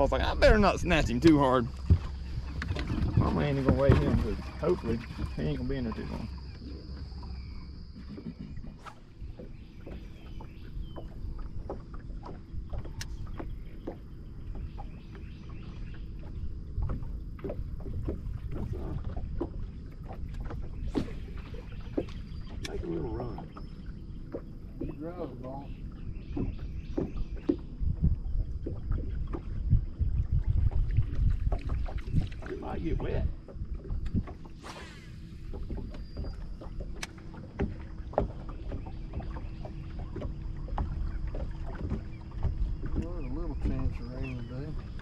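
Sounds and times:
wind on microphone: 0.0s - 9.4s, 16.1s - 23.6s, 25.9s - 39.8s
water lapping against boat hull: 0.0s - 45.0s.

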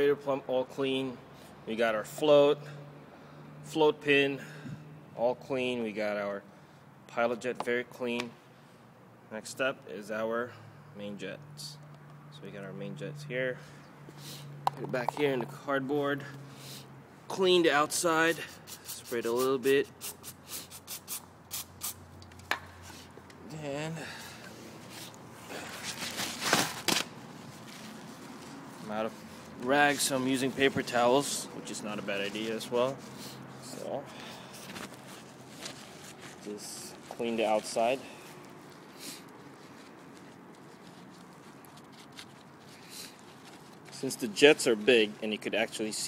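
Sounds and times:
aerosol can hissing bursts: 18.4s - 22.0s
paper towel rustling: 24.7s - 46.0s.

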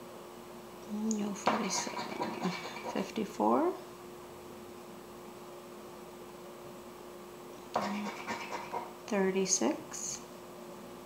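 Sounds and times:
low steady hum: 0.0s - 11.0s
scraper scratching a ticket: 7.8s - 8.9s.

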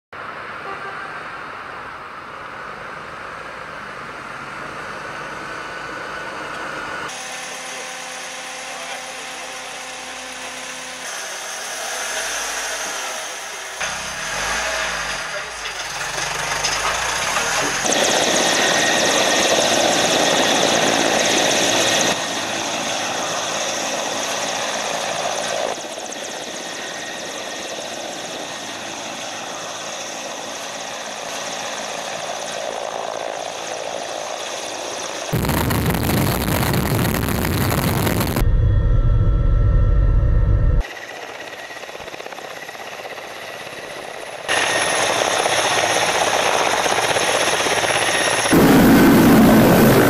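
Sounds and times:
helicopter turbines and rotors roaring: 0.2s - 50.0s.

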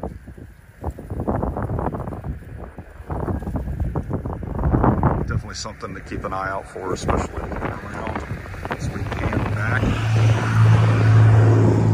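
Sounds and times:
gusty wind buffeting microphone: 0.0s - 11.9s.

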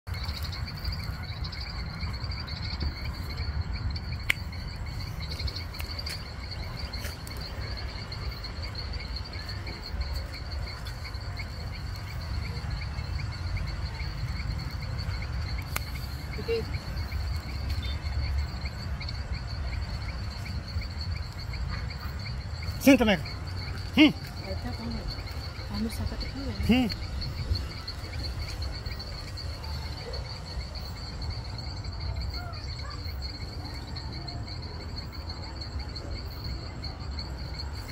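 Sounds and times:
insects chirping: 0.1s - 37.9s.

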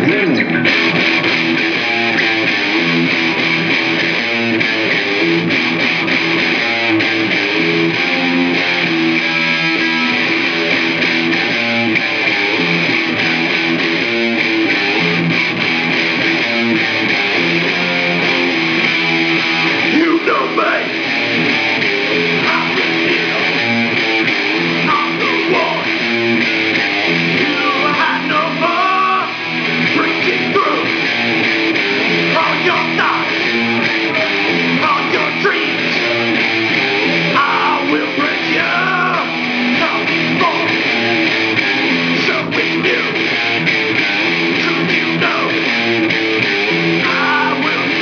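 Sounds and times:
man singing: 0.0s - 0.9s, 19.8s - 21.0s, 22.4s - 23.6s, 24.8s - 26.0s, 27.3s - 31.0s, 32.3s - 36.3s, 37.3s - 41.0s, 42.1s - 43.3s, 44.5s - 45.7s, 47.0s - 48.0s
electric guitar strumming: 0.0s - 48.0s.

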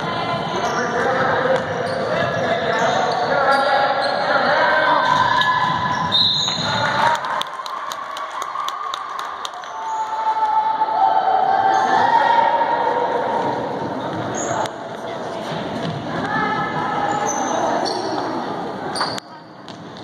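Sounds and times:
crowd and player voices: 0.0s - 20.0s
referee's whistle: 5.9s - 6.8s.

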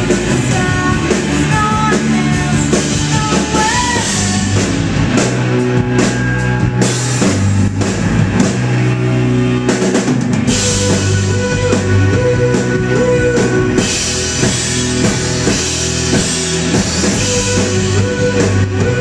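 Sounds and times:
rock band playing loudly: 0.0s - 19.0s.

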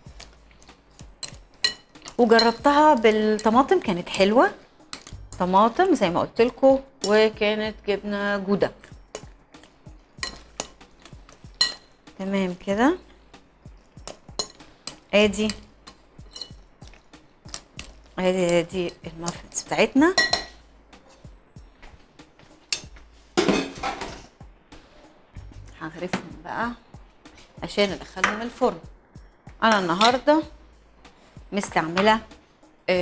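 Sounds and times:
utensils clinking on board and bowl: 0.5s - 4.3s, 4.9s - 5.5s, 9.1s - 12.0s, 13.9s - 19.4s, 20.2s - 21.2s
utensil clinking against glass: 16.3s - 16.6s.

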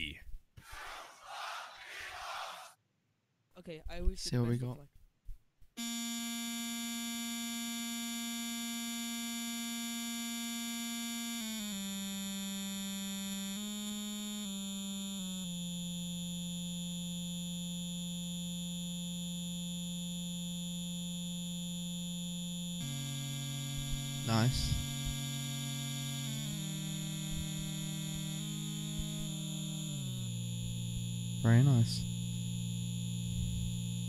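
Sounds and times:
synth-like drone: 22.2s - 34.0s.

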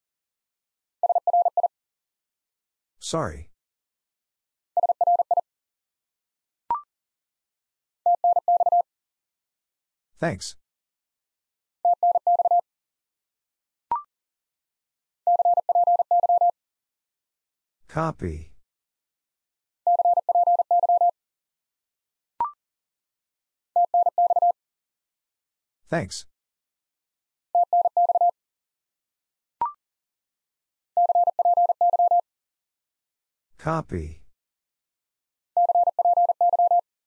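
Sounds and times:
morse code beeps: 8.1s - 8.8s, 11.9s - 12.6s, 15.3s - 16.5s, 19.9s - 21.1s, 23.8s - 24.6s, 27.6s - 28.3s, 31.0s - 32.2s, 35.6s - 36.8s
morse code tone: 31.0s - 32.2s, 35.6s - 36.8s.

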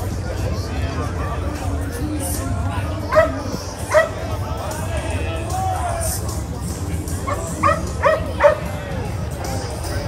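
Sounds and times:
dog barking: 3.1s - 4.2s, 7.3s - 8.7s.

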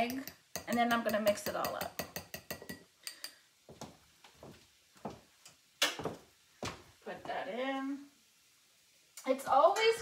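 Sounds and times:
whisk clinking on glass bowl: 0.0s - 3.4s.

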